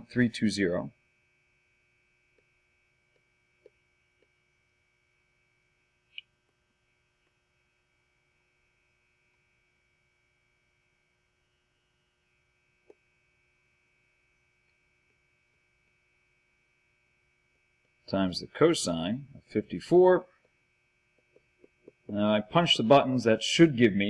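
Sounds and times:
faint electrical hum: 0.0s - 24.0s.

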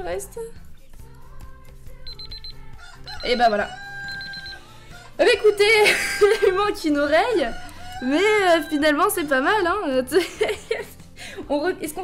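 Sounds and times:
background music: 0.0s - 12.0s
timer alarm rapid beeps: 2.0s - 4.7s.

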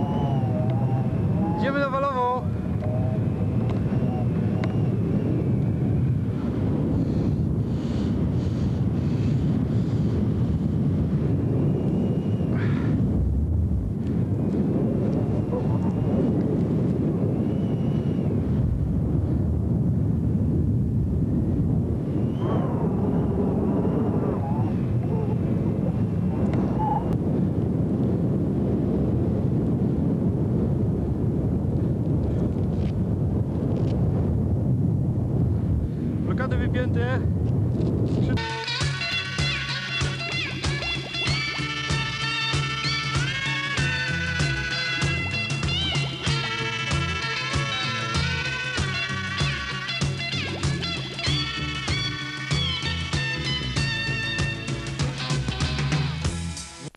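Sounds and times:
distant voices calling: 0.0s - 6.0s, 15.2s - 16.3s, 38.4s - 54.6s
wind buffeting microphone: 0.0s - 56.5s.

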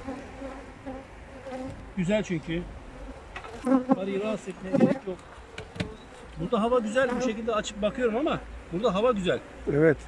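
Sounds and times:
honeybees buzzing: 0.0s - 9.8s.

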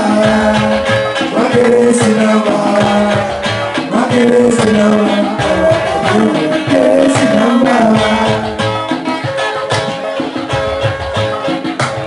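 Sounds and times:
live highlife band music: 0.0s - 12.0s
plucked guitar melody: 0.0s - 12.0s.

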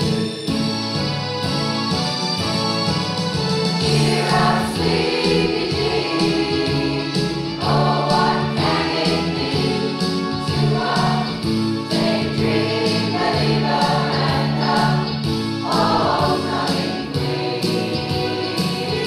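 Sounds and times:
choir singing over a beat: 3.8s - 19.0s.

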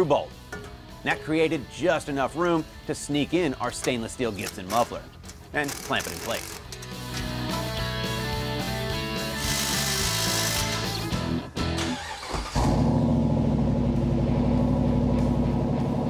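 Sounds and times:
background music: 0.0s - 12.8s
engine running through exhaust: 12.6s - 16.0s.

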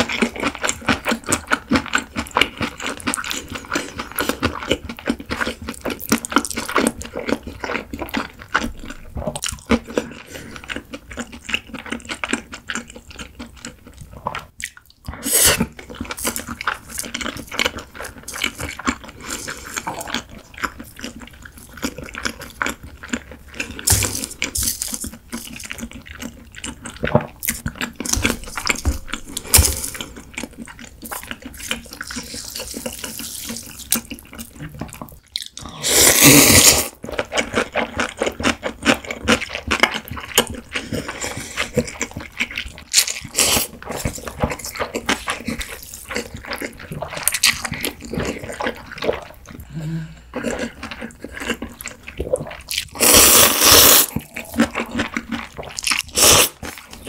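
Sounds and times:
chewing with clicks: 0.0s - 35.7s, 37.0s - 49.7s, 50.3s - 53.0s, 54.1s - 57.0s
wet slurping of noodles: 35.6s - 37.0s, 52.4s - 56.7s.

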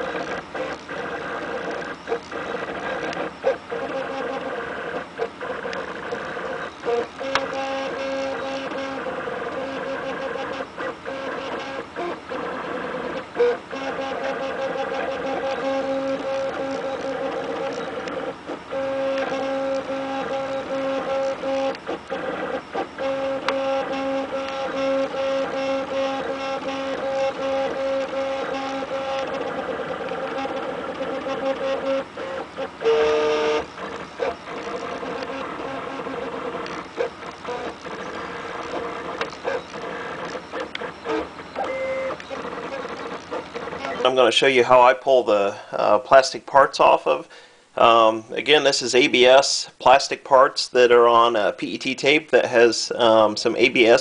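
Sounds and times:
short printer clicks: 0.1s - 44.0s
stepper motors whining: 0.1s - 44.2s.

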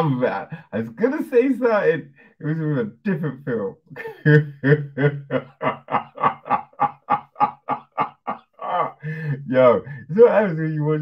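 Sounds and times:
man laughing hard: 4.0s - 10.1s.

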